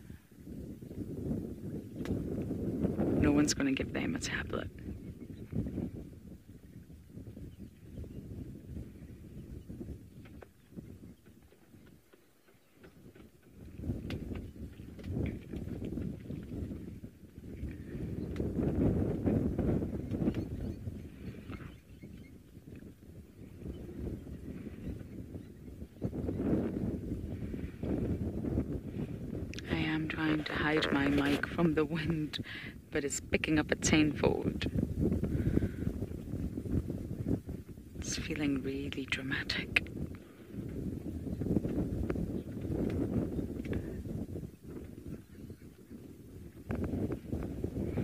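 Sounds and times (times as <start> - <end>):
gusty wind buffeting microphone: 0.0 - 48.0.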